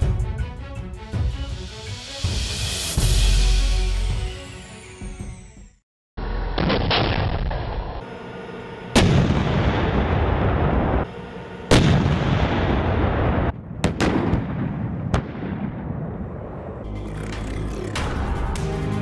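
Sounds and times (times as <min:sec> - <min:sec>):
tank gun shots: 0:09.0 - 0:11.0, 0:11.7 - 0:15.8.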